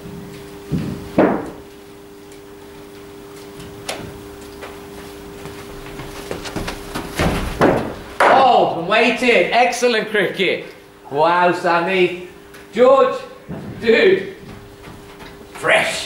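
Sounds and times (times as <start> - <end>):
thuds: 6.4 - 8.4.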